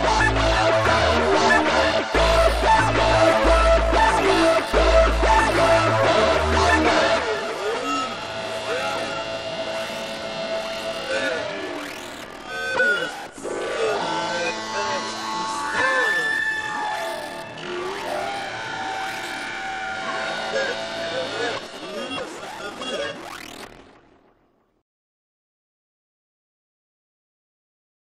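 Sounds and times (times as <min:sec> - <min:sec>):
held synth tone: 0:00.0 - 0:23.9
swooping synth pitch glides: 0:00.0 - 0:24.0.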